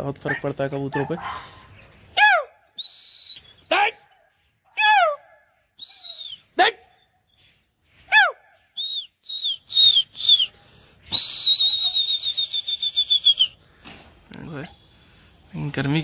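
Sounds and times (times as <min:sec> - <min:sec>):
person whistling: 0:02.8 - 0:03.7, 0:05.8 - 0:06.6, 0:08.8 - 0:13.6.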